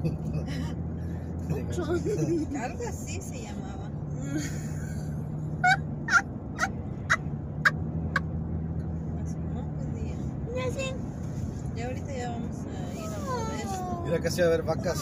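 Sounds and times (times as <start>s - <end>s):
car road noise and engine hum: 0.0s - 15.0s.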